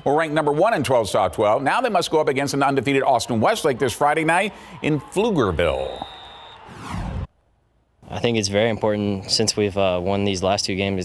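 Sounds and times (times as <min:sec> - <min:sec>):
brief swoosh: 0:06.0 - 0:07.3.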